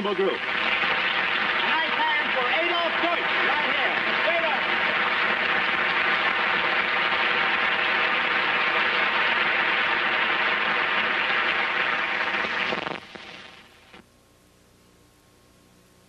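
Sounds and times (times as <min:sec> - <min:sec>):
audience applauding: 0:00.0 - 0:13.8.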